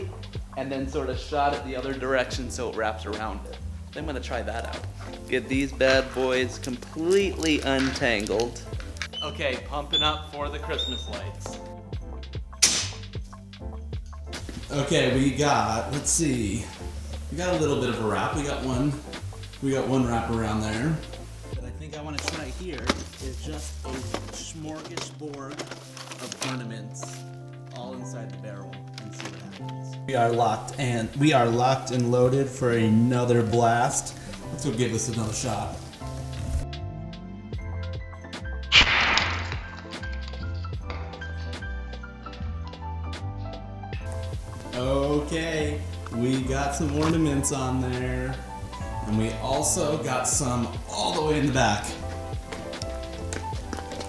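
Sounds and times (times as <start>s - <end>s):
background music with steady beat: 0.0s - 54.0s
air cannon blast: 38.7s - 39.8s.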